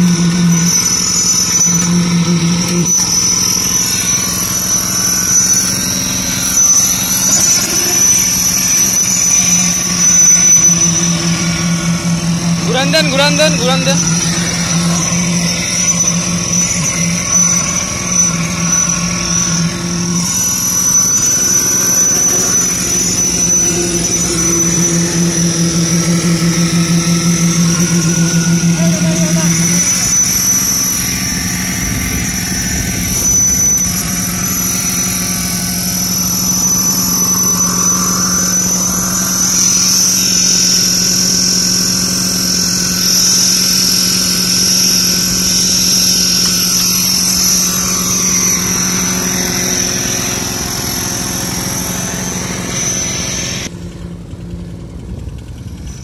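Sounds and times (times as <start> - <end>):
concrete vibrator engine hum: 0.0 - 56.0
high-pitched whine: 0.0 - 56.0.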